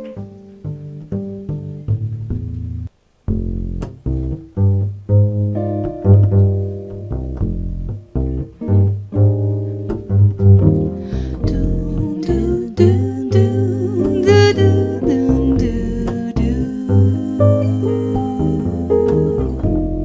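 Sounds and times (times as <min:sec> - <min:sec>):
double bass played pizzicato: 0:00.0 - 0:20.0
jazz guitar: 0:00.0 - 0:20.0.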